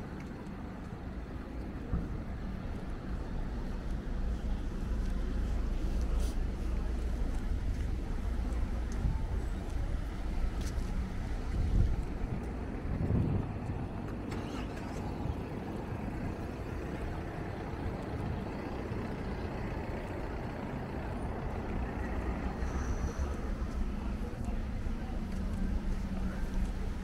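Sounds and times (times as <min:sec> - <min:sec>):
cars driving past: 0:01.0 - 0:27.0.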